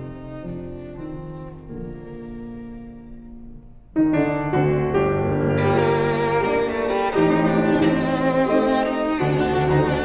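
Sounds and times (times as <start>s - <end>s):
piano: 0.0s - 10.0s
violin: 0.0s - 10.0s.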